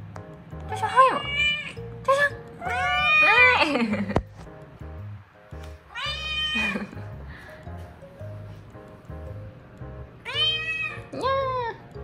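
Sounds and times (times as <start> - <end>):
background music: 0.0 - 12.0
cat meowing: 0.9 - 1.8, 2.6 - 3.6, 5.9 - 7.0, 10.2 - 11.8.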